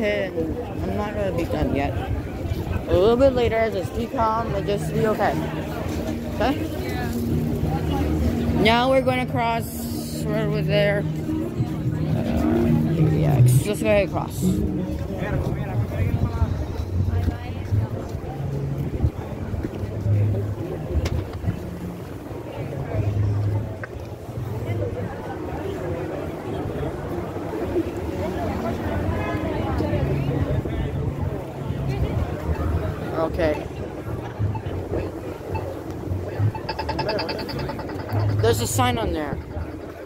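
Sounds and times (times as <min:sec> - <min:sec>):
city street noise: 0:00.0 - 0:40.0
passersby talking: 0:00.0 - 0:40.0.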